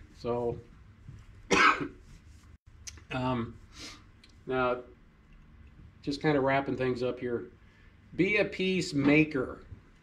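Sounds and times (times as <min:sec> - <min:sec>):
man coughing: 0:01.5 - 0:02.0.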